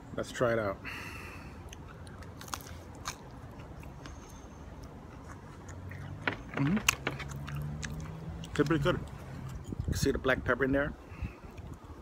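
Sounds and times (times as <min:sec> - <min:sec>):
person biting pastry: 0:01.6 - 0:09.7
wet chewing mouth sounds: 0:01.6 - 0:10.0.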